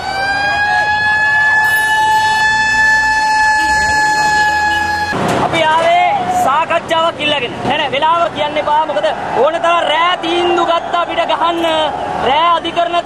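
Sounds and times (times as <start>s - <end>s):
horn long blast: 0.9s - 5.2s.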